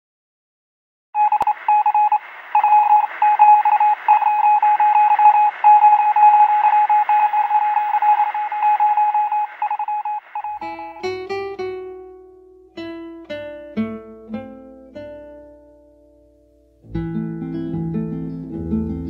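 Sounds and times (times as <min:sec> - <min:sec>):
morse code beeps: 0:01.2 - 0:11.0
radio hiss: 0:01.3 - 0:10.6.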